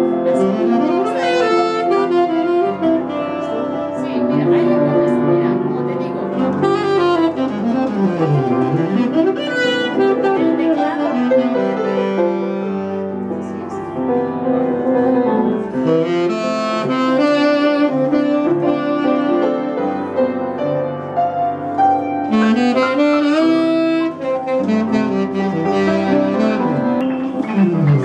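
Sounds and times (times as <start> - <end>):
saxophone melody: 0.0 - 13.3, 15.6 - 20.4, 22.0 - 28.0
piano accompaniment: 0.0 - 28.0.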